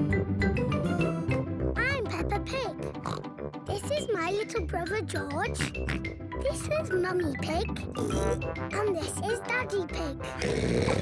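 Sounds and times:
cartoon theme music: 0.0s - 11.0s
girl's cartoon voice: 1.8s - 2.9s, 3.7s - 10.4s
pig snorting: 3.0s - 3.3s, 5.5s - 6.1s, 8.0s - 8.5s, 10.4s - 11.0s.

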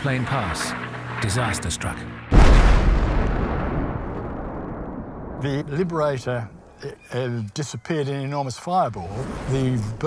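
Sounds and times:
deep explosion boom and rumble: 2.3s - 6.8s.

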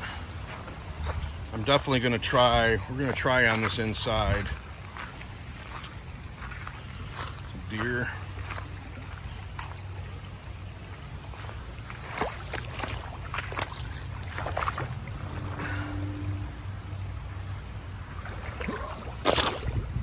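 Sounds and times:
footsteps crunching through twigs: 0.0s - 10.0s, 11.3s - 15.0s.

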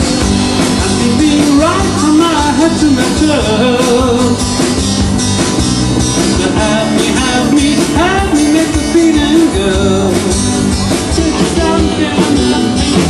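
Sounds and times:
acoustic guitar: 0.0s - 13.0s
rock band playing: 0.0s - 13.0s
man singing: 0.6s - 4.6s, 6.2s - 13.0s.

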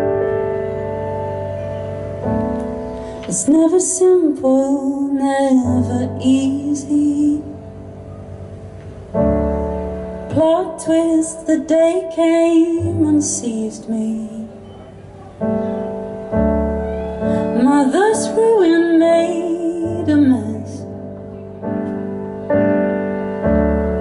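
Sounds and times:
piano chords: 0.0s - 24.0s
woman singing: 3.3s - 7.8s, 10.3s - 14.6s, 17.3s - 21.0s.

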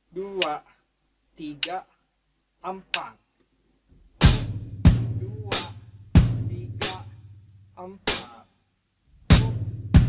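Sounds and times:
bass drum kick: 4.0s - 7.2s, 9.3s - 10.0s
hi-hat strokes: 4.2s - 8.6s, 9.2s - 10.0s.

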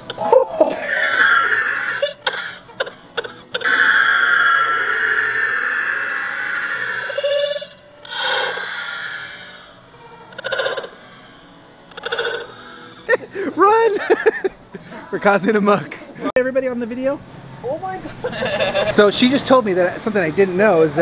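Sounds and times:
man laughing hard: 13.1s - 14.8s, 18.2s - 19.0s.

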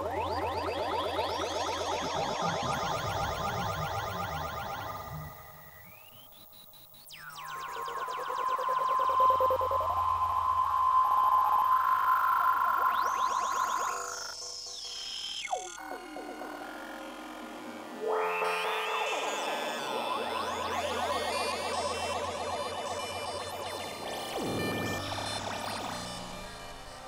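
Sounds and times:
synthesizer tone with pitch glides: 0.0s - 27.0s
stacked synth tones: 19.0s - 27.0s
low drone: 23.7s - 27.0s
sharp synth blip: 24.1s - 27.0s.

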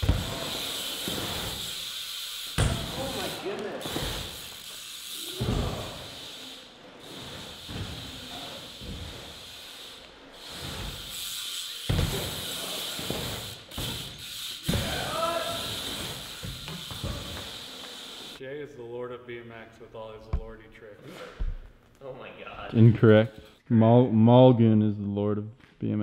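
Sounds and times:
bike landing thumps: 0.0s - 1.8s, 2.5s - 3.2s, 5.4s - 6.1s, 7.1s - 9.5s, 11.8s - 18.2s
bike tyres hissing on ramp: 0.0s - 18.4s.

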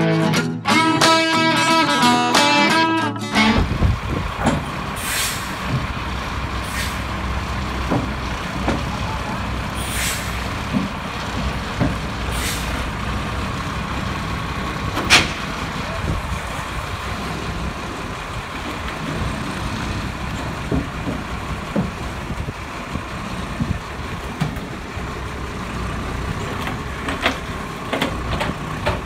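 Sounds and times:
truck engine rumbling: 0.0s - 29.0s
air brake hisses: 4.9s - 5.6s, 6.6s - 7.2s, 9.7s - 10.5s, 12.2s - 12.9s.

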